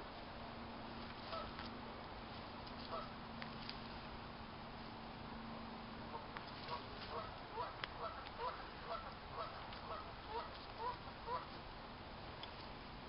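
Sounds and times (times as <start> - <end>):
geese honking: 1.3 - 1.6, 2.8 - 3.2, 6.1 - 11.6.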